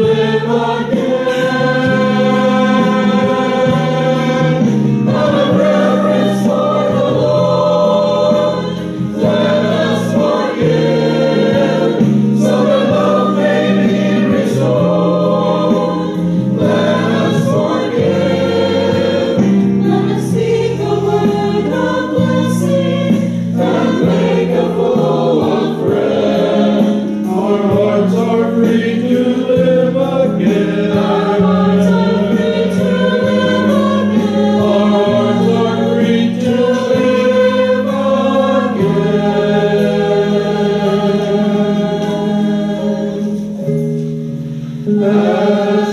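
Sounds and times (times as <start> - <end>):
choir singing a hymn: 0.0 - 45.9.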